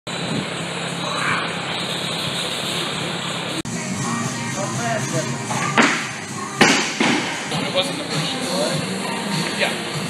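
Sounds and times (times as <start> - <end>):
drum fan running: 0.1 - 10.0.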